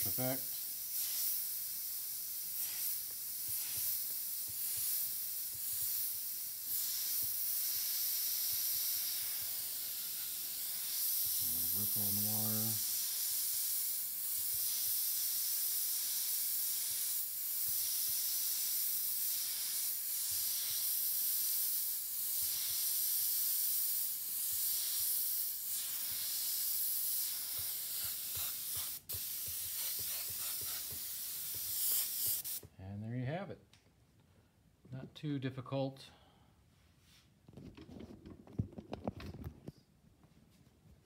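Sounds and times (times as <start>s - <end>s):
airbrush hissing: 0.0s - 32.7s.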